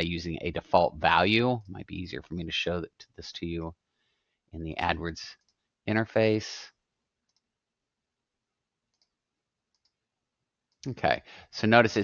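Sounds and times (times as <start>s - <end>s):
computer mouse clicks: 7.2s - 7.5s, 8.9s - 10.0s.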